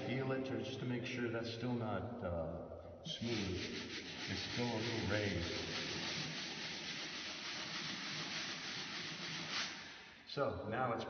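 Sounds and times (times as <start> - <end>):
sandpaper scraping a wall: 3.1 - 10.3.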